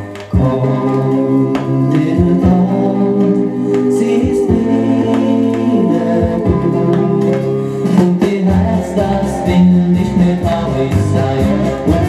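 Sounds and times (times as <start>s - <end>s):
choir singing over instrumental music: 0.0s - 12.0s.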